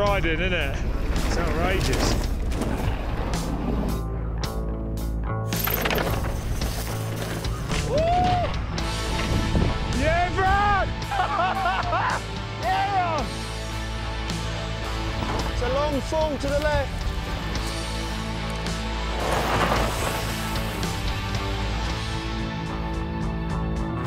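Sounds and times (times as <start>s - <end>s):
background music with drone: 0.0s - 24.0s
bike tyres crunching on rock: 19.0s - 21.4s.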